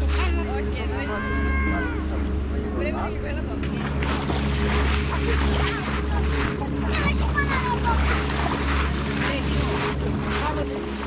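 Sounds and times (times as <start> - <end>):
bathers' voices: 0.0 - 11.0
low engine hum: 0.0 - 11.0
footsteps crunching on pebbles: 4.0 - 11.0.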